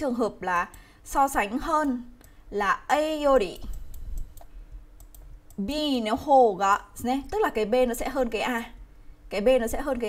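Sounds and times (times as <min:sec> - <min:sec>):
woman speaking: 0:00.0 - 0:03.7, 0:05.6 - 0:10.0
stylus clicks on screen: 0:03.4 - 0:05.7.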